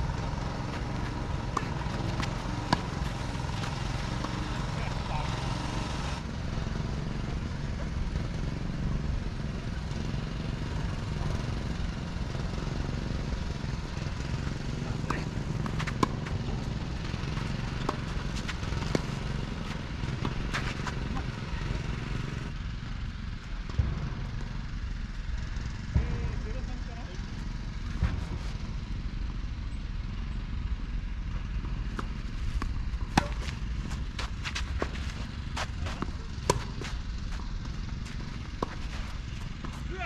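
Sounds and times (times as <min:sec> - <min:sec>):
tennis ball strikes and bounces: 0:00.1 - 0:06.0, 0:12.8 - 0:22.4, 0:31.5 - 0:40.0.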